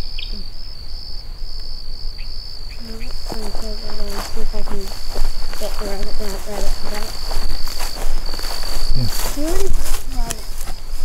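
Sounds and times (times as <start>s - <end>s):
crickets trilling: 0.0s - 11.0s.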